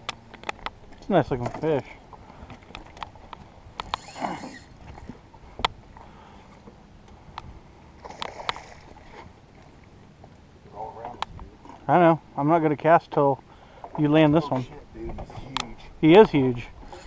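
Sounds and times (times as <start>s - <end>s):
sharp clicks and light knocks: 0.0s - 1.8s.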